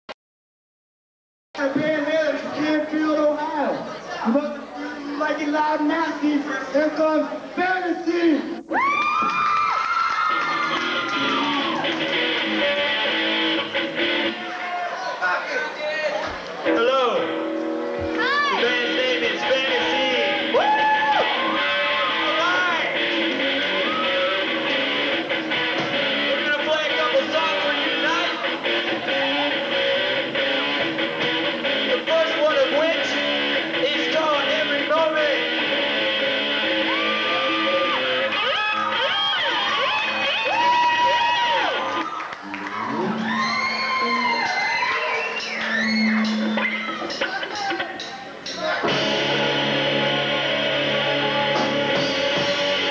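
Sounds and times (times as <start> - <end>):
rock band playing: 10.2 - 14.6, 16.5 - 52.9
electric guitar lead sliding: 10.3 - 14.5, 16.6 - 52.9.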